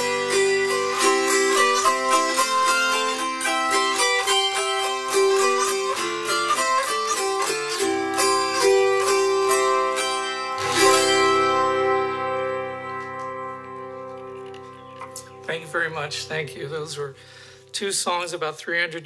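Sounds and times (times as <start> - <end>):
autoharp strummed chord: 0.0 - 17.6
autoharp plucked melody: 0.0 - 18.4.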